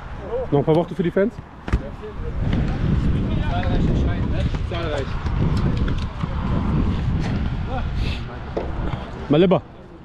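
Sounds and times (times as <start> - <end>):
people talking: 0.2 - 6.8.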